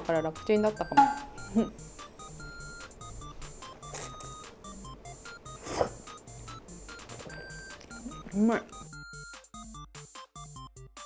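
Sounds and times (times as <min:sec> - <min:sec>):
electronic music with bleeping notes: 0:00.1 - 0:09.9.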